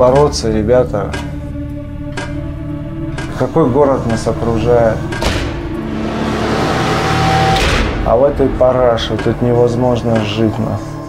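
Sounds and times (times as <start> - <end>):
low hum: 5.4 - 9.9
rushing noise: 5.6 - 9.2.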